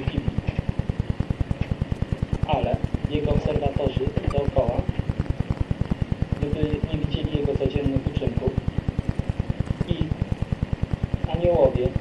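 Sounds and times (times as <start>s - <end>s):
low rapid pulsing thrum: 0.0s - 12.0s.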